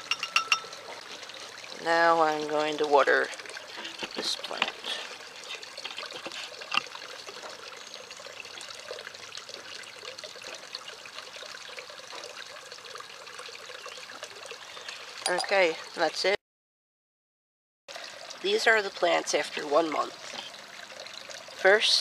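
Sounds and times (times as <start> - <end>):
water trickling onto soil: 0.0 - 15.2.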